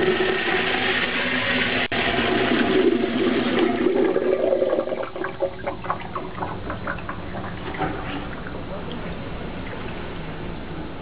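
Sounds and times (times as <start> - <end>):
urinal flushing: 0.0 - 10.3.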